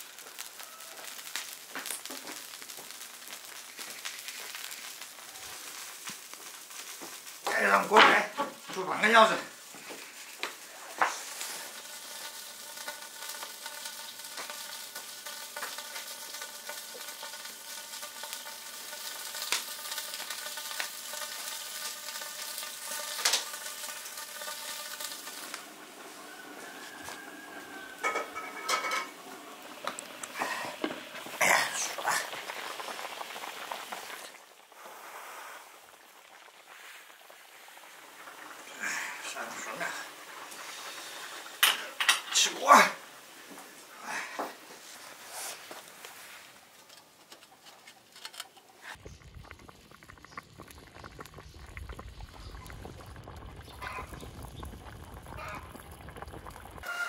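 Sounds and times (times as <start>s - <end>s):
wood fire crackles and knocks: 0.0s - 34.4s
stew bubbling in a wok: 0.0s - 57.0s
stirring clatter in a wok: 11.1s - 25.4s, 27.7s - 29.2s.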